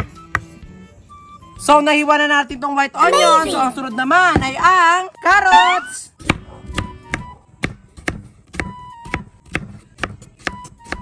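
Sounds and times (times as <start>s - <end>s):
quiet background music: 0.0s - 11.0s
knife chopping on wooden board: 6.2s - 11.0s.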